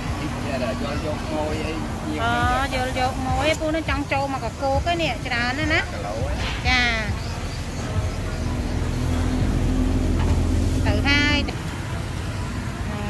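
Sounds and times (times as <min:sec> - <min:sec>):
motor vehicle engine running: 0:00.0 - 0:13.0
street noise: 0:00.0 - 0:13.0.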